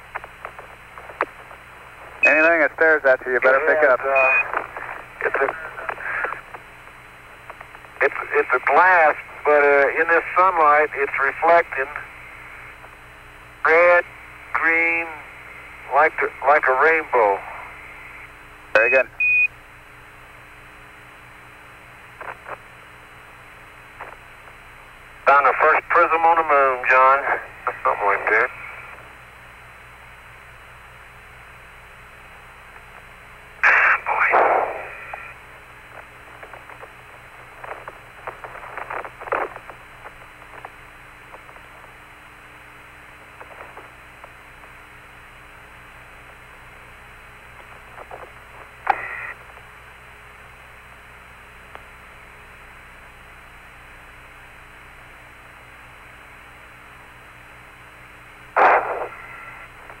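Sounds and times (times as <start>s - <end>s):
radio hiss: 0.0s - 19.2s, 19.8s - 60.0s
faint hum: 0.0s - 60.0s
bursts of radio static: 1.0s - 6.7s, 7.4s - 19.2s, 25.2s - 29.0s, 33.6s - 41.9s, 47.2s - 49.4s, 58.3s - 60.0s.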